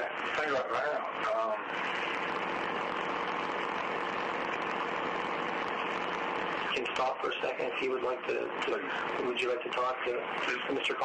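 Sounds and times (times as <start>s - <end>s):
static hiss: 0.0s - 11.0s.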